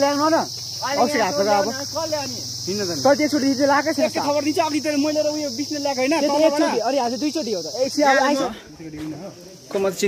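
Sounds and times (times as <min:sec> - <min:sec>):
high-pitched insect drone: 0:00.0 - 0:10.0
man talking: 0:00.0 - 0:10.0.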